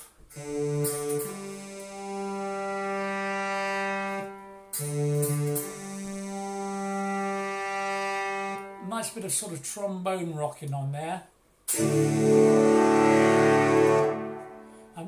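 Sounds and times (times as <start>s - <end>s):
synthesized brass chords: 0.0s - 9.2s, 11.7s - 15.0s.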